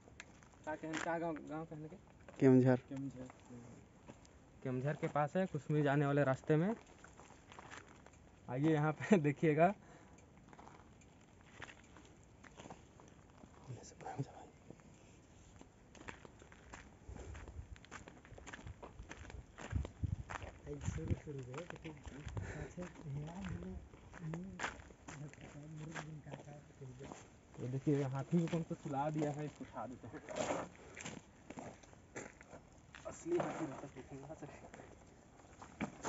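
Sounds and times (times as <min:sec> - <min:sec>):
footsteps on stony ground: 0:06.7 - 0:08.4, 0:10.4 - 0:13.9, 0:14.6 - 0:36.0
person speaking: 0:13.6 - 0:14.6, 0:20.7 - 0:30.8, 0:33.0 - 0:34.9.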